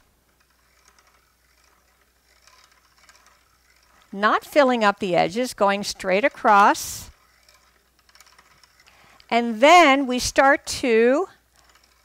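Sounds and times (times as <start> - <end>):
bobbin winder ticking and rattling: 0.0 - 12.0.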